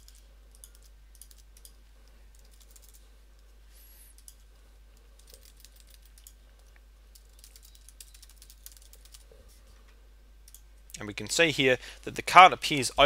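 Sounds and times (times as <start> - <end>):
typing on computer keyboard: 0.0 - 3.0, 5.2 - 9.3.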